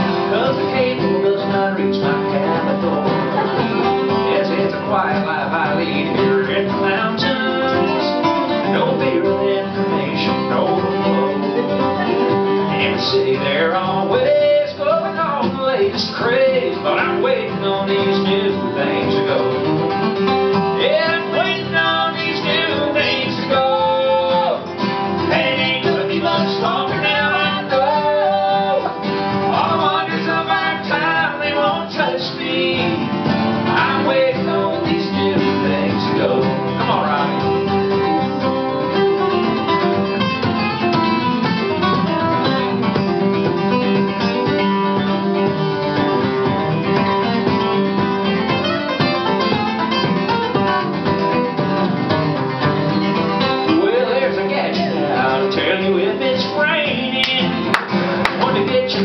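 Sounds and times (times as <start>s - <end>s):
picked acoustic guitar melody: 0.0s - 59.0s
strummed guitar chords: 0.0s - 59.0s.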